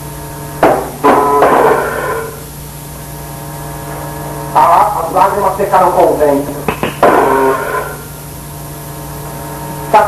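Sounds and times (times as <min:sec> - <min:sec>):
steady hum with held tones: 0:00.0 - 0:10.0
distorted burst falling in pitch: 0:00.6 - 0:02.5, 0:06.9 - 0:08.3.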